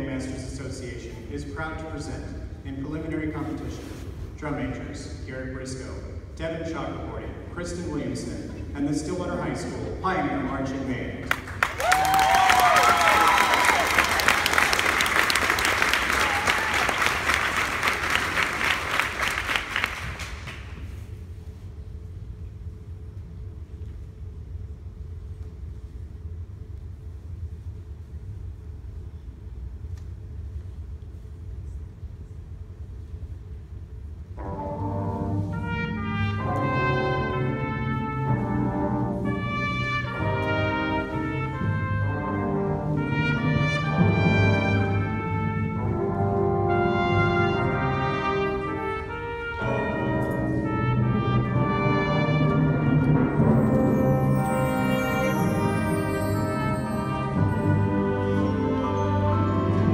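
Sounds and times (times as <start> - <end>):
low background hum: 0.0 - 59.9
marching band brass chords: 34.4 - 59.9.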